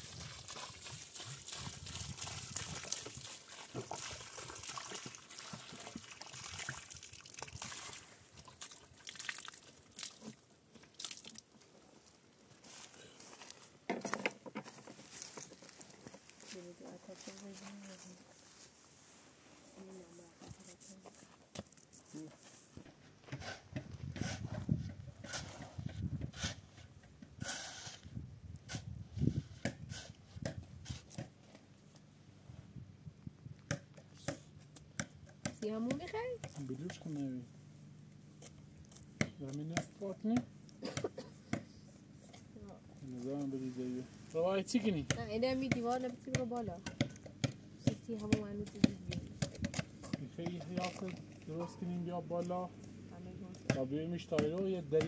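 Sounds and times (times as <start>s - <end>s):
shovel scraping sand: 23.3s - 24.6s, 25.2s - 31.1s.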